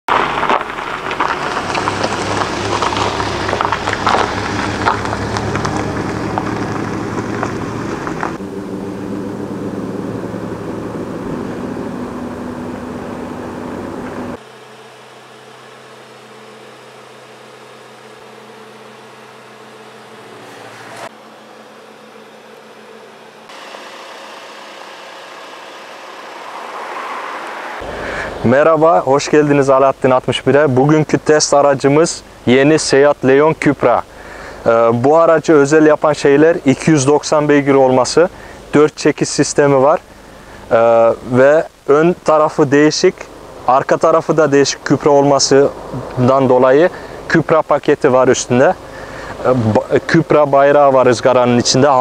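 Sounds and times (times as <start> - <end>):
tyres crunching on gravel: 0.1 - 8.5
car engine running: 0.1 - 38.8, 39.7 - 52.0.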